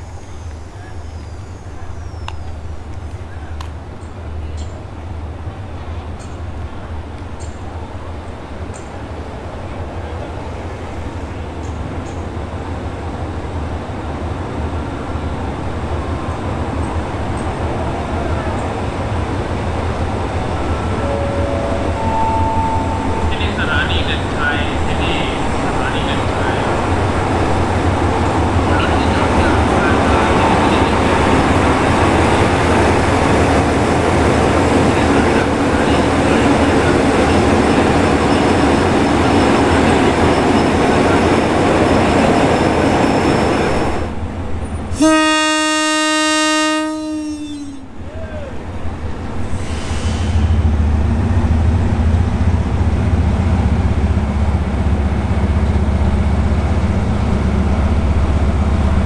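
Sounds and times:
train rumbling on rails: 0:00.0 - 0:59.0
train horn blast: 0:20.8 - 0:24.1, 0:44.9 - 0:48.0.

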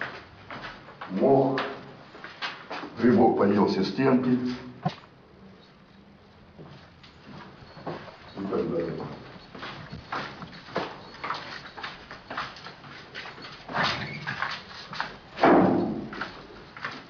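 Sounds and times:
footsteps on hard floor: 0:00.0 - 0:03.0, 0:06.6 - 0:13.7
louder thuds: 0:15.4 - 0:16.2.

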